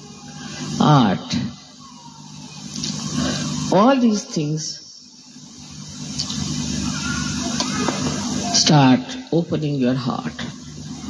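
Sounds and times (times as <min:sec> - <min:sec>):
recording hiss and hum: 0:00.0 - 0:11.0.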